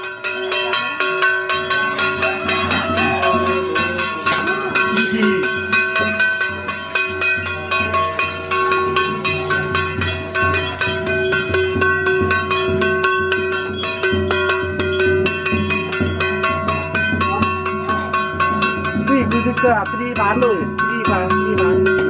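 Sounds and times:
drum beating: 0.0s - 22.0s
ringing metal percussion strikes: 0.0s - 22.0s.

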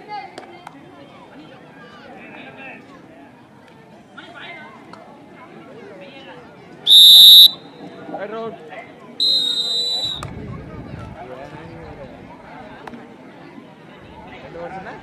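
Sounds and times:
crowd voices: 0.0s - 15.0s
referee's whistle blasts: 6.9s - 7.7s, 9.2s - 10.2s.

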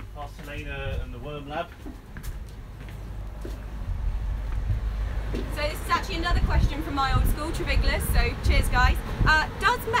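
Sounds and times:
low rumble aboard boat: 0.0s - 9.8s.

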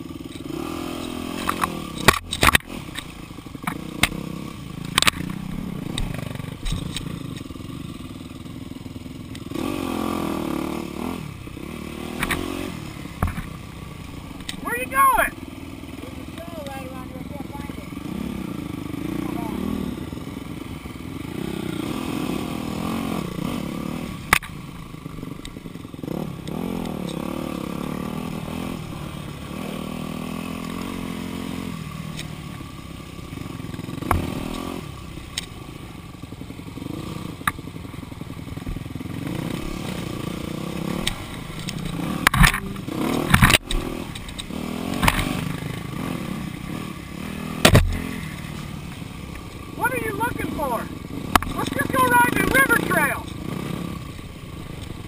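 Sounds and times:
dirt bike engine revving: 0.0s - 55.0s
person shouting: 14.6s - 15.4s, 49.8s - 51.0s, 51.6s - 53.3s
sharp knocks: 47.6s - 48.1s.

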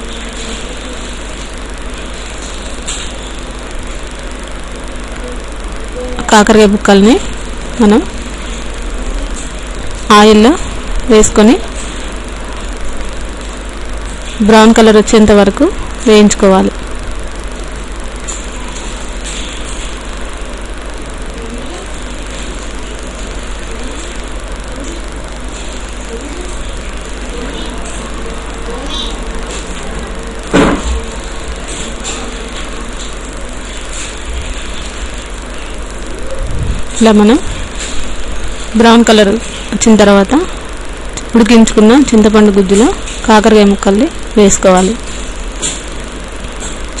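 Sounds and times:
low hum: 0.0s - 47.0s.

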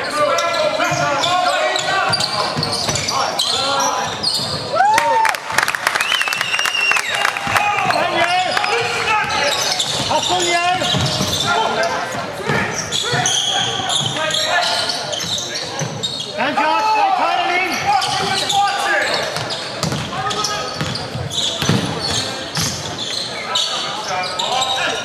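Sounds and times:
voices in gym: 0.0s - 5.2s, 6.5s - 25.0s.

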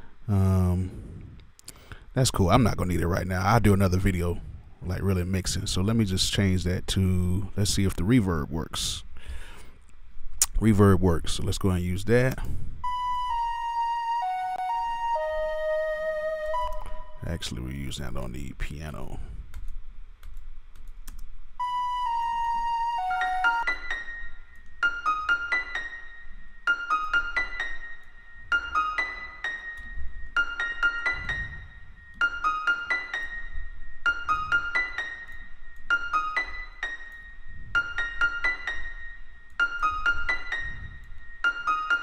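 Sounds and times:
piano melody with reverb: 21.6s - 42.0s.

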